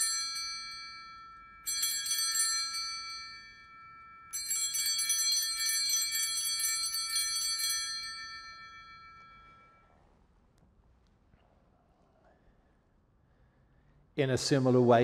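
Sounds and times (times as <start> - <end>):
altar bells ringing: 0.0 - 10.0.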